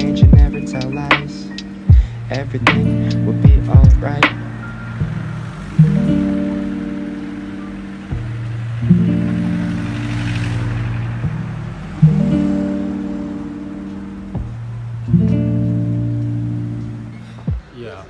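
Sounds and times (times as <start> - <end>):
guitar chords ringing: 0.0 - 18.0.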